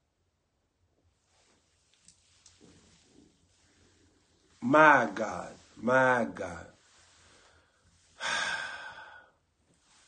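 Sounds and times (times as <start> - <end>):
man sighing: 8.1 - 9.4.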